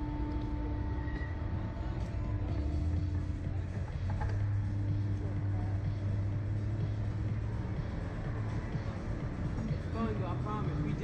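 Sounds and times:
ride machinery humming: 0.0s - 11.0s.

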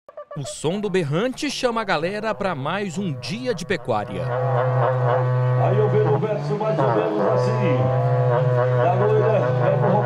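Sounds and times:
cattle horn trumpets blowing: 2.3s - 10.0s.

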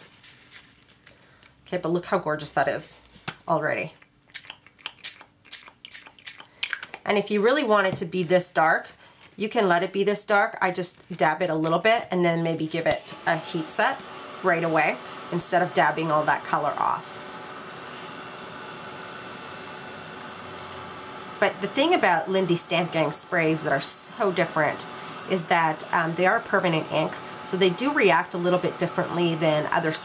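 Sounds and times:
paper towel crumpling: 0.0s - 1.1s
heat tool blowing hot air: 12.5s - 30.0s.

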